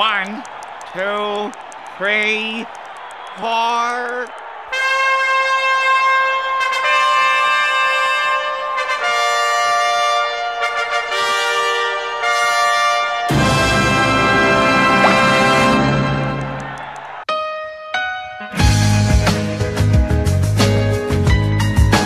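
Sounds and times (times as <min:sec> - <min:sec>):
brass fanfare chords: 0:04.7 - 0:17.2
loud chord with heavy low end: 0:13.3 - 0:16.6
count-in: 0:13.3 - 0:16.9.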